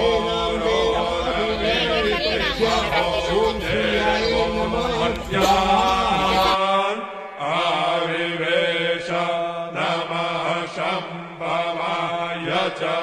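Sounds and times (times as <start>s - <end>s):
person chanting: 0.0s - 13.0s.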